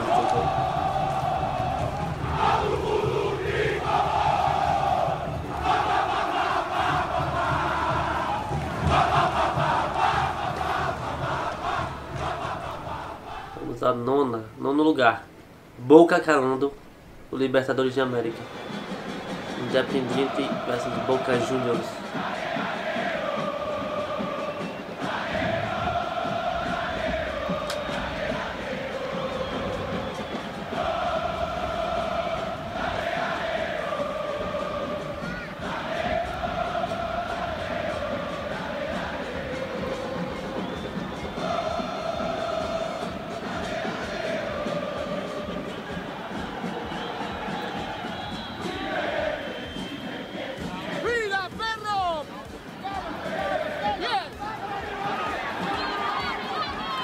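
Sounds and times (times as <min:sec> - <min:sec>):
stadium crowd chanting in unison: 0:00.0 - 0:15.5, 0:16.4 - 0:57.0.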